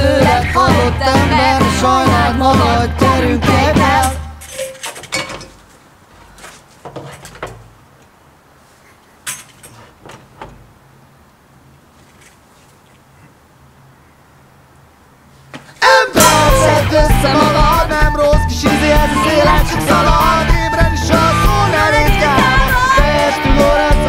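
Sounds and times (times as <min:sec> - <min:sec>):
rock band playing: 0:16.2 - 0:24.0.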